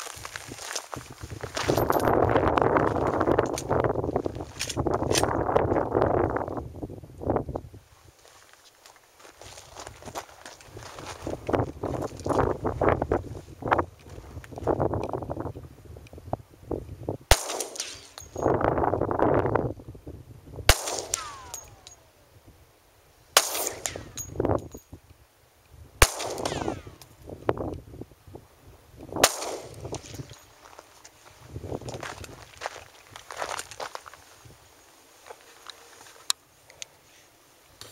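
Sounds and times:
gusting wind noise: 0.0 - 8.2, 9.7 - 34.8
pistol shots: 17.3 - 18.2, 20.7 - 22.0, 23.4 - 24.2, 26.0 - 27.0, 29.2 - 29.9.

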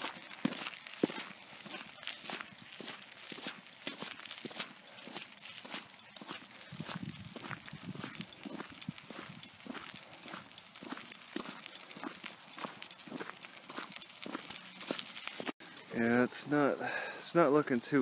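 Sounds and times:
footsteps on pavement and dirt: 0.0 - 15.6.

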